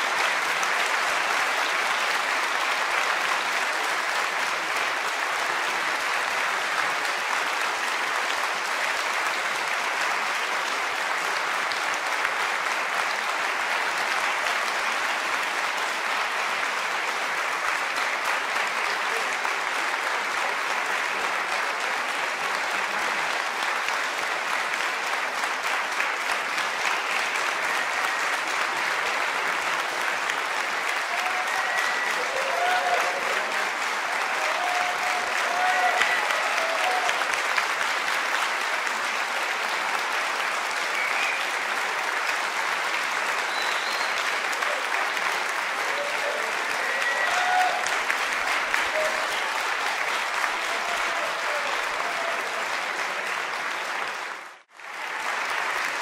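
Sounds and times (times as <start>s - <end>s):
audience applauding: 0.0s - 56.0s.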